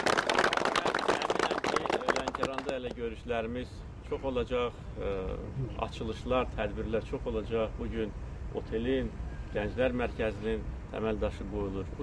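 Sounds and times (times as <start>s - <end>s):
people clapping: 0.0s - 3.0s.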